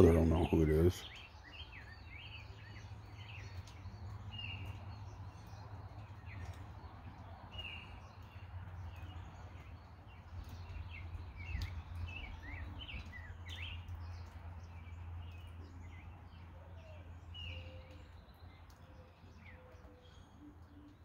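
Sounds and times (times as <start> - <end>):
songbirds chirping: 0.0 - 21.0.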